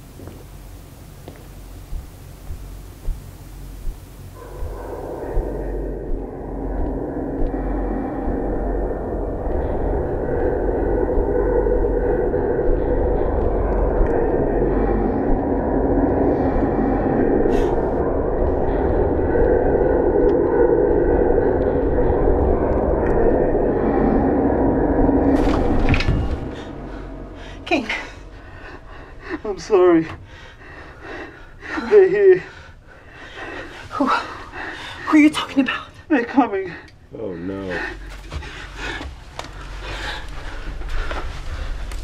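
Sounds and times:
rumbling horror drone: 0.0 - 42.0.

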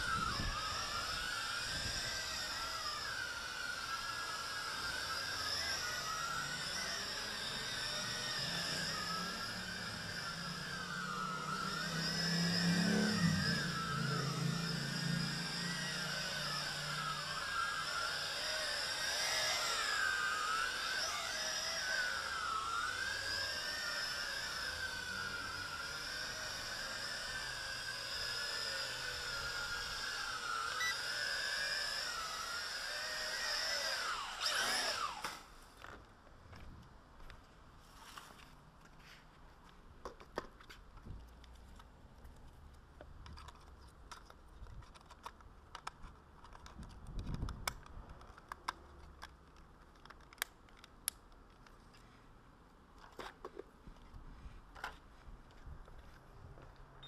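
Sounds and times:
low hum: 0.0 - 31.3
toy drone propellers whining: 0.0 - 35.7.

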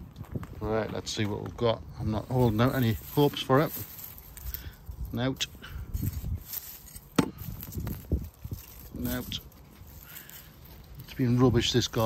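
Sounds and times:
garden fork crunching into soil: 2.5 - 12.0
dull thuds of earth turned: 5.9 - 10.0.

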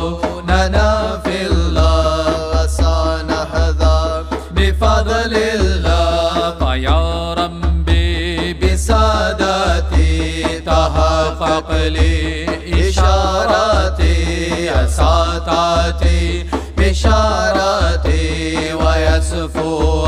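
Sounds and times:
deep regular beat: 0.0 - 20.0
devotional chant singing: 0.0 - 20.0.

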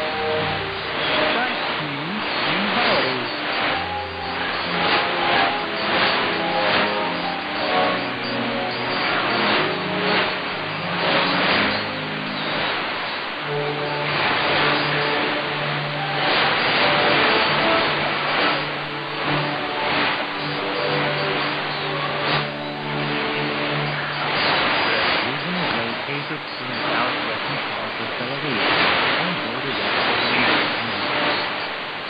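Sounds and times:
radio music with held notes: 0.0 - 32.0
radio static hiss: 0.0 - 32.0.

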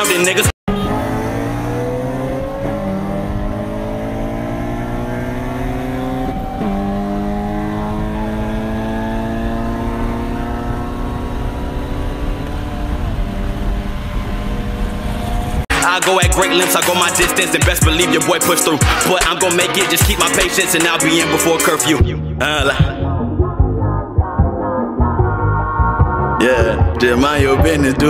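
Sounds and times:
car engine accelerating: 0.7 - 15.7
road and wind noise: 0.7 - 15.7.

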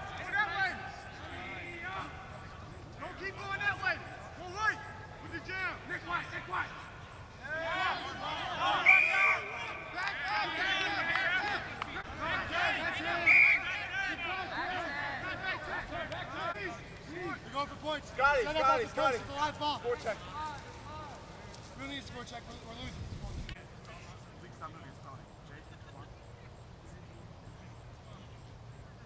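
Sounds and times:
voices shouting and calling: 0.0 - 29.0
referee's whistle blasts: 8.0 - 10.0, 12.8 - 14.2.

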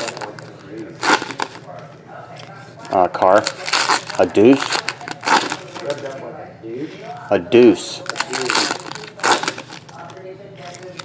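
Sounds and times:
foil wrapper crinkling and tearing: 0.0 - 1.7, 3.3 - 6.2, 8.0 - 11.0.

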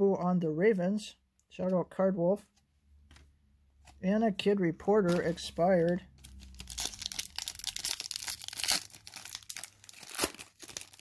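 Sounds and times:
foil wrapper tearing and crinkling: 6.2 - 11.0.

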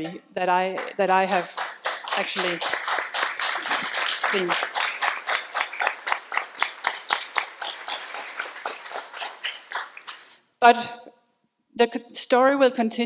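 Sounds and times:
audience applauding: 0.8 - 10.3.

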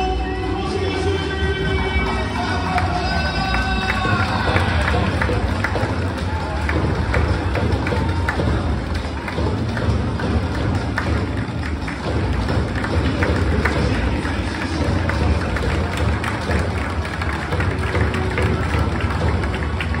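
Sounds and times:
music over public-address system: 0.0 - 20.0.

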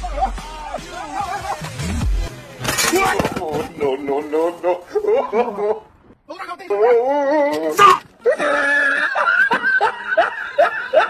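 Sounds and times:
rhythmic laughter: 0.0 - 2.3, 8.2 - 11.0.

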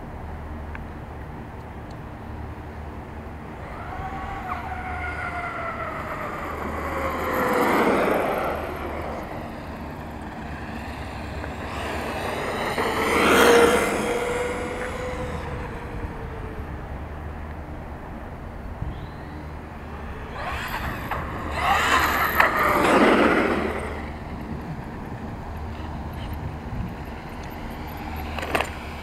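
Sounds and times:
electric motor whine passing by: 3.4 - 29.0
tyre noise on asphalt: 3.5 - 17.7, 19.0 - 29.0.

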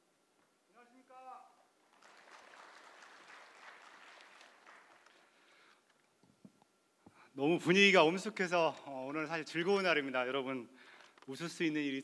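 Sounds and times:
audience applause: 1.9 - 5.6.

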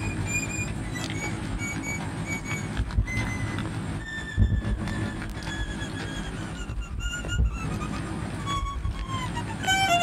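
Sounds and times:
low rumbling noise: 0.0 - 10.0
violin sliding high notes: 0.0 - 10.0.

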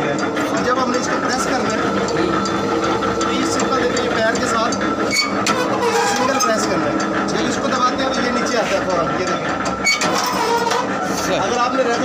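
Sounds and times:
press machine whirring: 0.0 - 12.0.

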